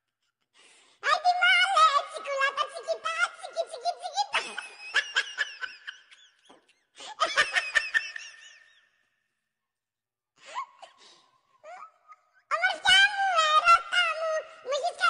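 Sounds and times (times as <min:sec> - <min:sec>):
children laughing and giggling: 0:01.1 - 0:09.0, 0:10.4 - 0:15.0.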